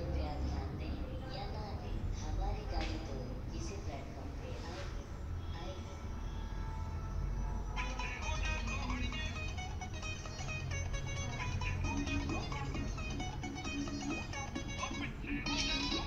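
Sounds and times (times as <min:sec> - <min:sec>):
song through small loudspeaker: 0:07.8 - 0:16.0.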